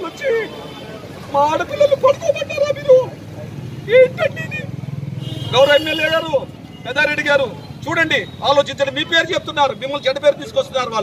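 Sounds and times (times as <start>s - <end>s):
man speaking: 0.0s - 4.8s, 5.5s - 11.0s.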